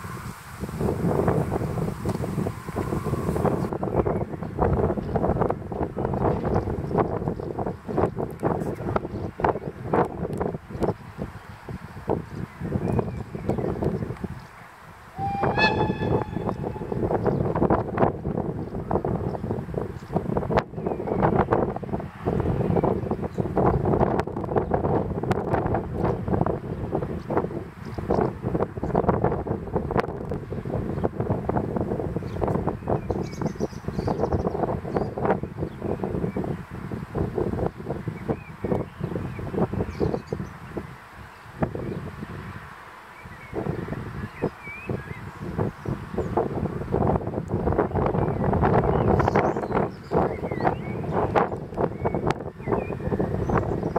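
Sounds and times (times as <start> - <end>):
train rumble: 14.9 - 18.5
locomotive horn blast: 15.2 - 17.6.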